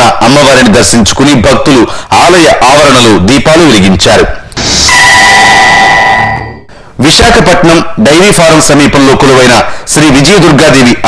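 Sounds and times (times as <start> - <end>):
held broadcast tone: 4.5 - 6.8.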